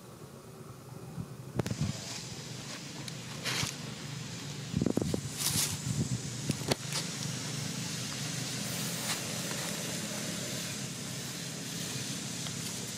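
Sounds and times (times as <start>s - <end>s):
light hiss: 0.0s - 12.9s
low engine hum: 0.0s - 12.9s.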